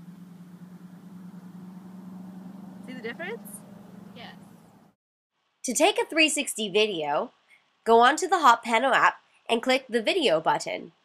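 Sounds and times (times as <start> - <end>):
steady low hum: 0.0 - 5.0.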